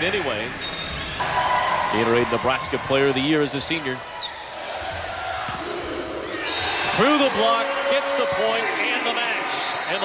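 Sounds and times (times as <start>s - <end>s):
crowd noise in gym: 0.0s - 10.0s
sneaker squeak: 0.5s - 1.2s, 4.0s - 4.5s.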